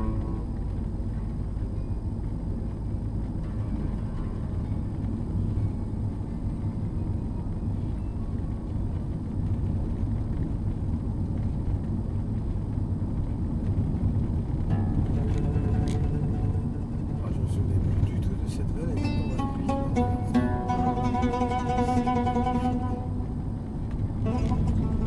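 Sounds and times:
car engine and tyre rumble: 0.0 - 25.0.

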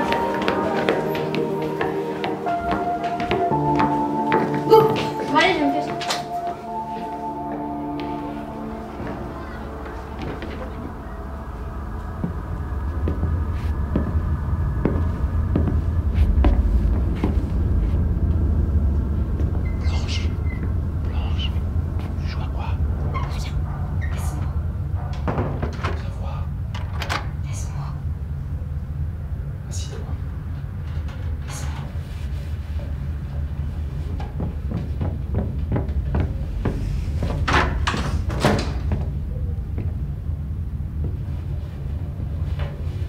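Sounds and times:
steady low hum: 0.0 - 43.0
deep low rumble: 5.2 - 43.0.

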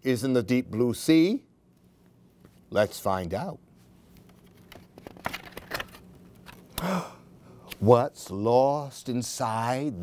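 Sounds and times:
book pages turning: 3.8 - 6.7
short gasp: 6.8 - 7.7.

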